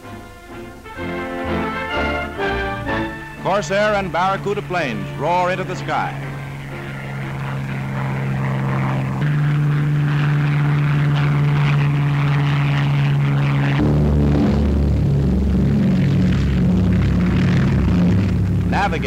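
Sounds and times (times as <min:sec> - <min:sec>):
deeper rumble: 0:00.0 - 0:19.0
held low musical tones: 0:00.0 - 0:19.0
propeller aircraft engines roaring: 0:00.0 - 0:19.0.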